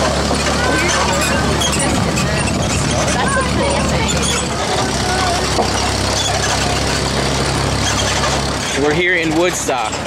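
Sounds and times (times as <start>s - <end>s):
faint voices: 0.0s - 6.9s
tractor engine running: 0.0s - 10.0s.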